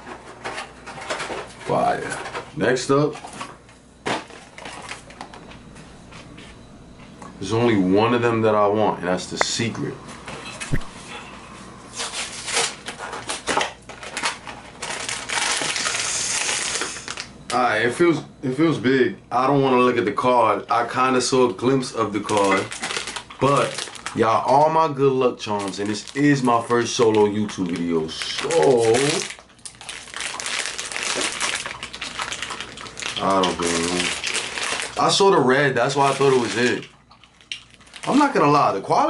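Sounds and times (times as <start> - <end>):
packet crinkling: 12.0 - 17.4, 21.8 - 38.7.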